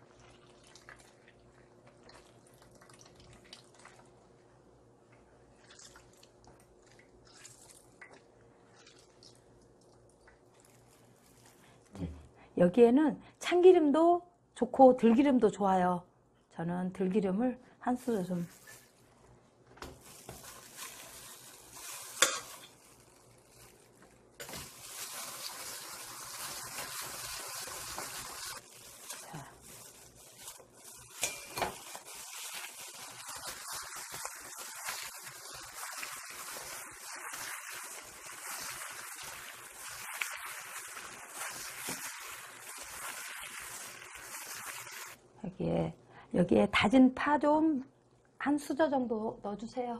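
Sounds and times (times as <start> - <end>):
gloved hand mixing wet vegetables: 0.0 - 12.0, 17.8 - 45.3.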